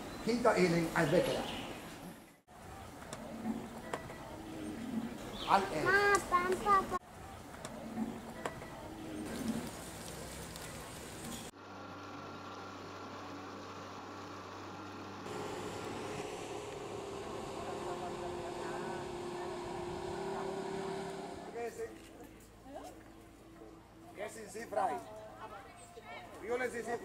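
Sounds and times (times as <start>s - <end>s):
voices: 2.5s - 11.5s, 15.3s - 27.0s
motor humming: 12.0s - 21.6s.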